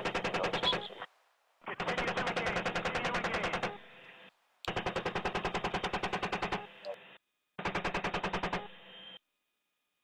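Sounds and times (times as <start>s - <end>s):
chain gun firing rapid bursts: 1.8s - 3.8s, 4.7s - 6.7s, 7.6s - 8.8s.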